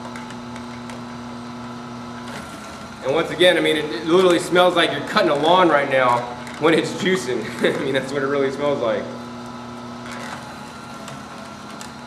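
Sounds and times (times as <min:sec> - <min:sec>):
juicer humming: 0:00.0 - 0:12.0.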